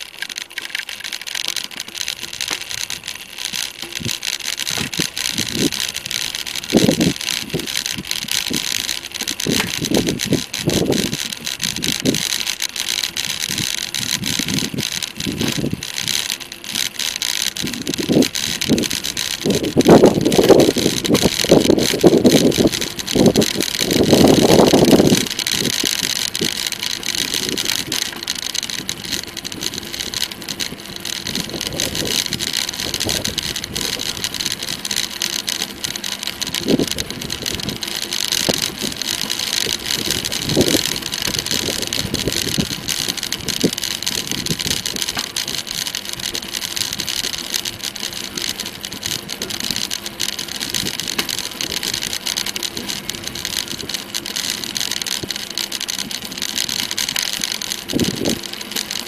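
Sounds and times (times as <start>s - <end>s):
bicycle tyres on tarmac: 0.0s - 59.0s
wind over microphone: 6.7s - 8.7s, 9.4s - 12.3s, 13.3s - 16.1s, 17.6s - 26.6s, 31.2s - 34.4s, 36.5s - 37.8s, 39.7s - 45.6s, 57.9s - 58.4s.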